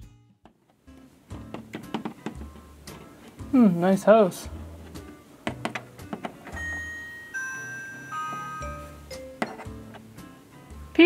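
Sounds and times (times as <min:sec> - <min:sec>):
doorbell chime: 0:06.5 - 0:09.4.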